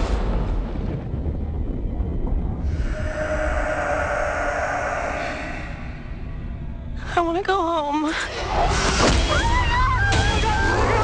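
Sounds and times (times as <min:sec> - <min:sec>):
deep steady rumble: 0:00.0 - 0:08.8
sustained droning tone: 0:01.3 - 0:08.0.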